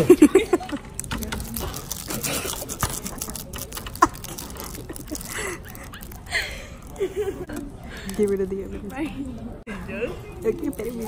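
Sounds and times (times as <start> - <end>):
plastic wrapper crinkling: 0.9 - 7.0, 10.4 - 11.0.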